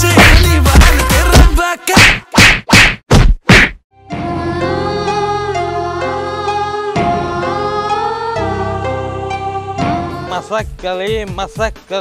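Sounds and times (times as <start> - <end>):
loud whacks: 0.2 - 3.8.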